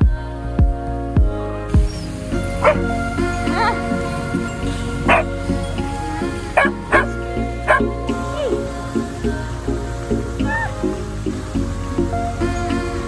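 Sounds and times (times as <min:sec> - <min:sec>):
background music: 0:00.0 - 0:13.0
dog barking and yipping: 0:02.6 - 0:02.9, 0:05.1 - 0:05.3.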